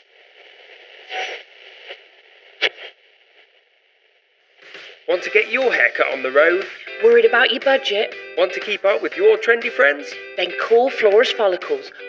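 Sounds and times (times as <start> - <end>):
crackle bursts: 0.0 - 6.9
radio static hissing: 0.0 - 12.0.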